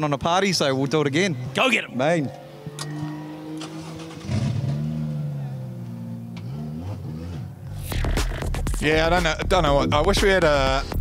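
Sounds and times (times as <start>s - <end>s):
car engine revving: 1.3s - 8.6s.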